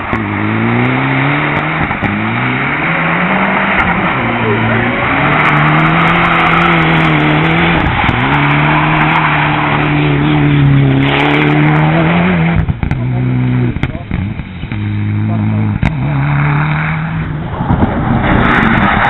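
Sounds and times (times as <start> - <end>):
rally car engine at high revs: 0.0 - 19.0.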